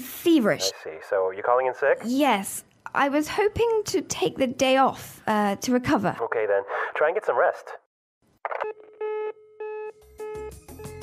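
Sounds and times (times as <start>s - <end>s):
telephone busy tone beeps: 8.6s - 11.0s
music: 9.9s - 11.0s.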